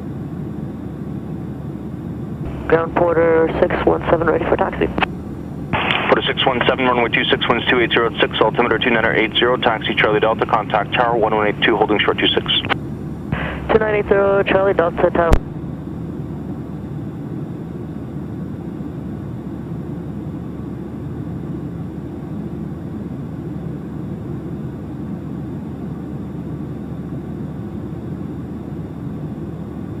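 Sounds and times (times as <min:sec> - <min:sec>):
airplane engine idling: 0:00.0 - 0:30.0.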